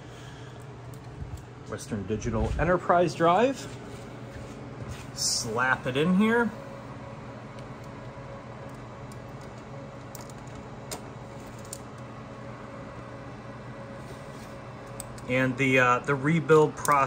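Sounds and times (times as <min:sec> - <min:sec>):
server fans humming: 0:00.0 - 0:17.0.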